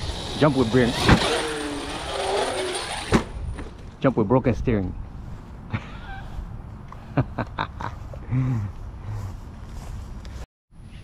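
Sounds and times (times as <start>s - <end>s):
electric motor whining: 0.0s - 3.3s
toy truck landing thud: 2.8s - 3.7s.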